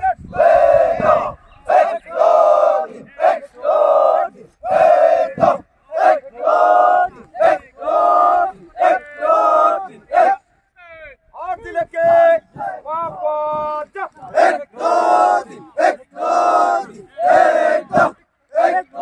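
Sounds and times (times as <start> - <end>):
people shouting drill calls in unison: 0.0 - 11.0.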